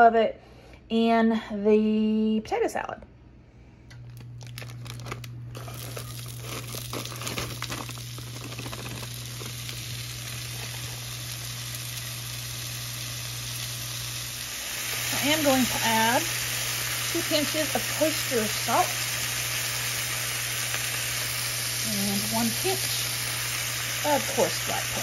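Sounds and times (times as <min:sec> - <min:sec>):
plastic bag crinkling: 0:04.1 - 0:11.3
vegetables sizzling in a pan: 0:05.6 - 0:25.0.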